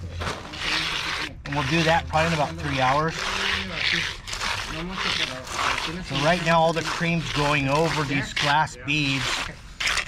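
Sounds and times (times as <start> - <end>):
float swishing over wet concrete: 0.0 - 10.0.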